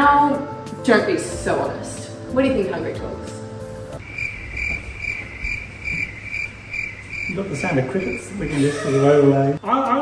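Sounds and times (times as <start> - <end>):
cricket chirping: 4.0 - 8.8.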